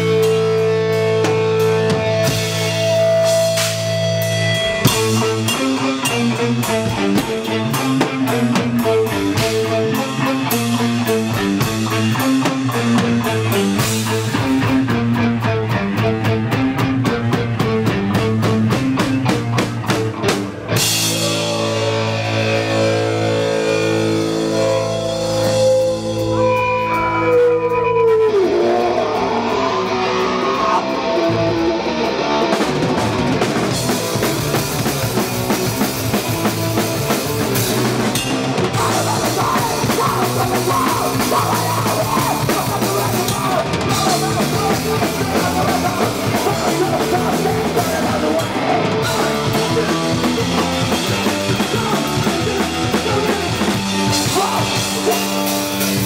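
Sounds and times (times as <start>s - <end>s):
bass guitar: 0.0s - 56.0s
distorted guitar: 0.0s - 56.0s
fast drums: 0.0s - 56.0s
hardcore punk band playing live: 0.0s - 56.0s.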